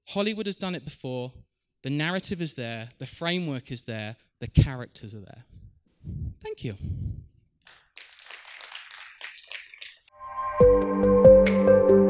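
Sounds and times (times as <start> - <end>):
audience applause: 7.7 - 10.1.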